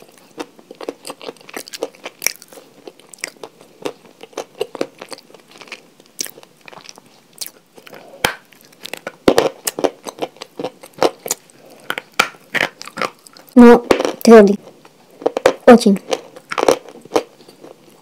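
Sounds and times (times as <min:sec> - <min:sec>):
person chewing chalk crunches: 0:00.0 - 0:14.3, 0:15.2 - 0:18.0.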